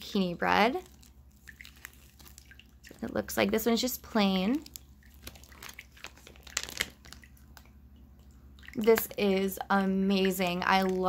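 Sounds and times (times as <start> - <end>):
faint steady low hum: 0.0 - 11.0
plastic packaging crinkling: 0.7 - 3.1, 4.4 - 7.8.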